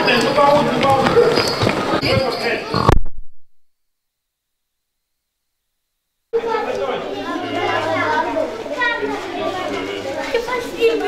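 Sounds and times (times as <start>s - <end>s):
children chattering: 0.0s - 3.0s, 6.4s - 11.0s.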